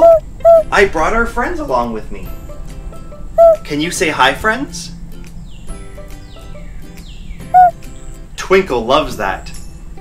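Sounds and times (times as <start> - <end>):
cartoon owl call: 0.0 - 0.7, 3.4 - 3.6
light background music: 0.0 - 10.0.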